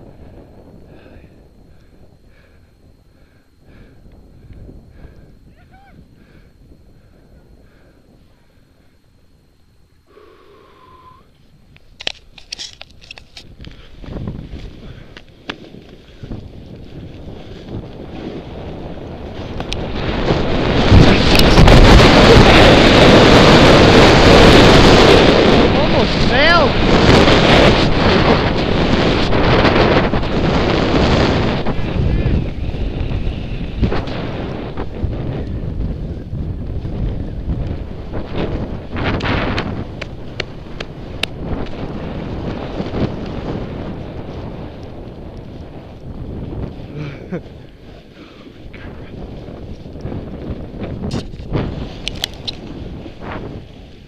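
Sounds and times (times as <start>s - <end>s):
wind rushing over microphone: 0.0s - 54.0s.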